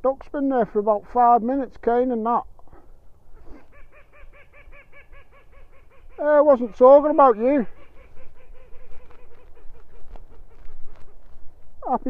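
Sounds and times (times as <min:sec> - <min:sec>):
waterfowl nasal calls: 0:03.3 - 0:12.0.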